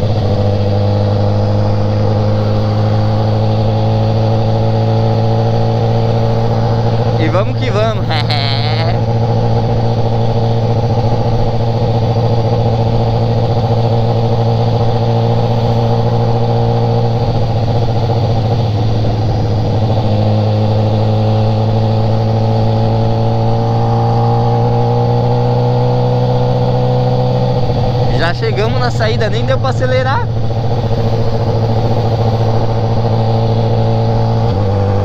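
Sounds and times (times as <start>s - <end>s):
motorcycle engine cruising: 0.0s - 35.0s
wind noise: 16.9s - 21.2s.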